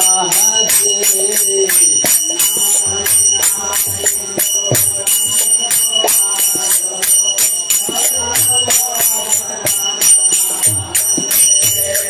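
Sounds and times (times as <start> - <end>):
hand cymbals ringing: 0.0 - 12.0.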